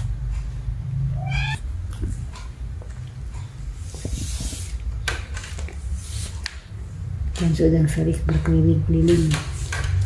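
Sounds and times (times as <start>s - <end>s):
steady low rumble: 0.0s - 4.8s
cat meowing: 1.1s - 1.6s.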